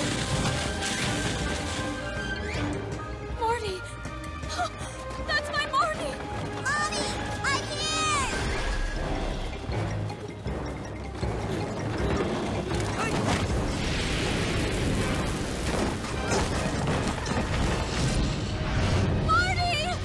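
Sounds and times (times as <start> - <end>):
dramatic background music: 0.0 - 20.0.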